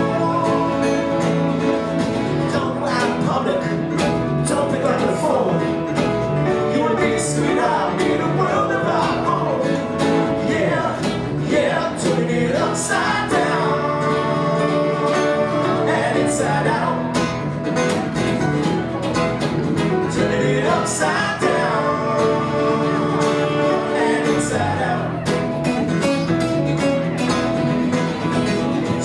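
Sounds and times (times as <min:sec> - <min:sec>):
live country-rock band: 0:00.0 - 0:29.0.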